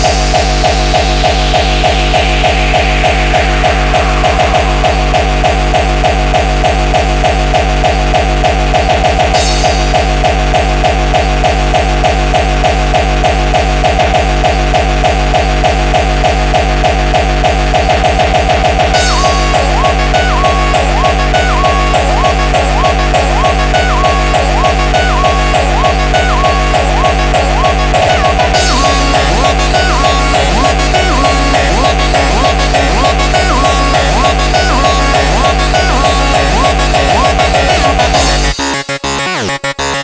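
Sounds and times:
fast distorted kick drum: 0:00.0 - 0:38.8
stepping higher synth line: 0:00.0 - 0:39.9
repeating synth riff: 0:00.0 - 0:40.0.

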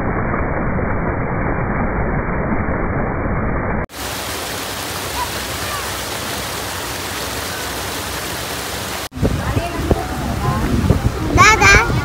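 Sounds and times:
water rushing over weir: 0:03.3 - 0:12.0
water churning in channel: 0:03.9 - 0:12.0.

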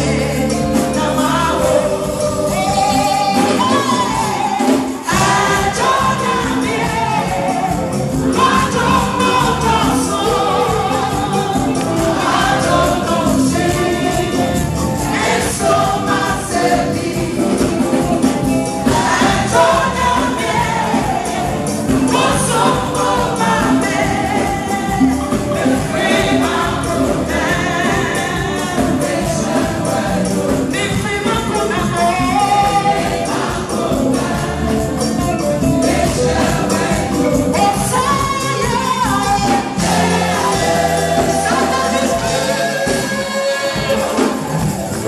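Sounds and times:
gospel choir singing with band: 0:00.0 - 0:45.0.

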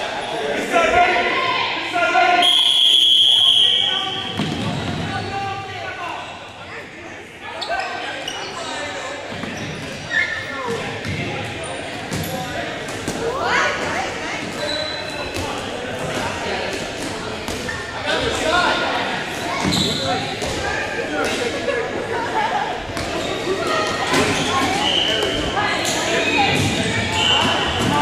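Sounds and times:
balls bouncing on gym floor: 0:04.2 - 0:05.2, 0:26.4 - 0:28.0.

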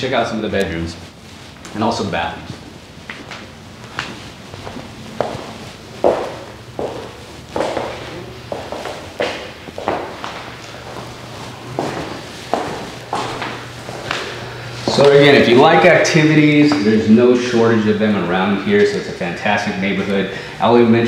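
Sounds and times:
faint low hum: 0:00.0 - 0:21.0
footsteps on hard floor: 0:00.9 - 0:15.8.

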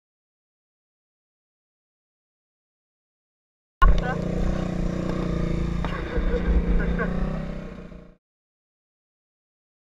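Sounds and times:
dirt bike engine running: 0:03.8 - 0:08.2.

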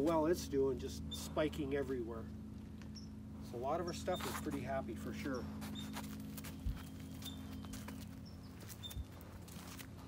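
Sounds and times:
steady low hum: 0:00.0 - 0:10.0
soft footsteps: 0:05.6 - 0:10.0.

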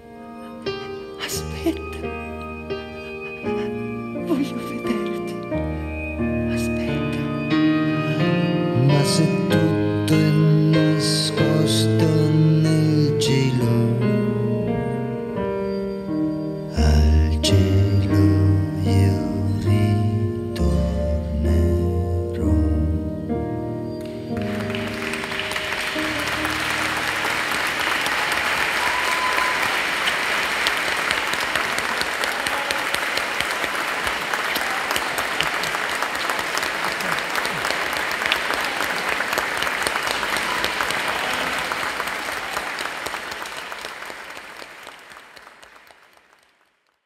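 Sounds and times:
music: 0:00.0 - 0:30.2
audience applauding: 0:24.0 - 0:47.0.

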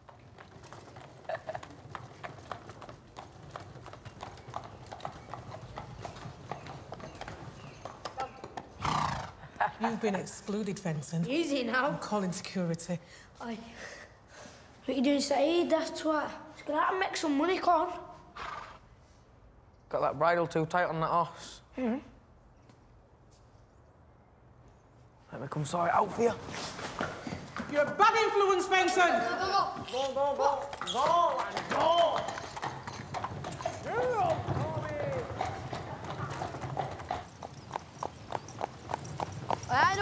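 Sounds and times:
horse hooves clip-clopping on pavement: 0:00.0 - 0:09.6, 0:26.2 - 0:40.0.

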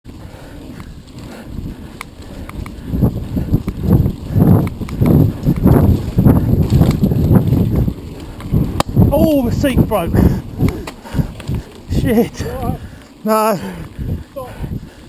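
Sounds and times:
bike rattling over dirt trail: 0:00.1 - 0:15.0
wind buffeting microphone: 0:00.1 - 0:15.0
sharp clicks: 0:01.9 - 0:02.8, 0:04.6 - 0:05.8.

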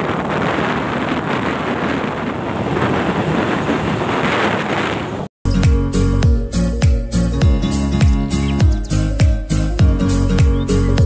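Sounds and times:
wind on microphone: 0:00.0 - 0:05.3.

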